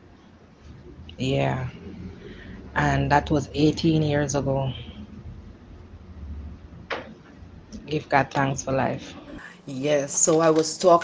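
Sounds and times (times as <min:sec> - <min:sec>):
low steady background hum: 0:00.0 - 0:11.0
person speaking: 0:01.1 - 0:05.2, 0:07.8 - 0:11.0.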